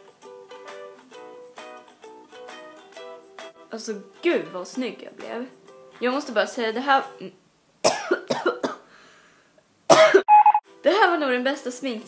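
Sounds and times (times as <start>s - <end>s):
brief high tone: 10.3s - 10.6s.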